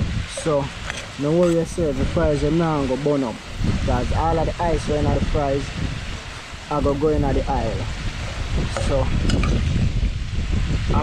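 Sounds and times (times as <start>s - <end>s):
fries frying in hot oil: 0.0s - 11.0s
wind buffeting microphone: 0.0s - 11.0s.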